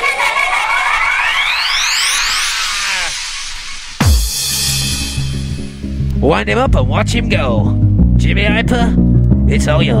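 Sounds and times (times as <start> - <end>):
synth riser sweeping up: 0.5 - 6.2
hardcore dance beat: 2.4 - 6.1.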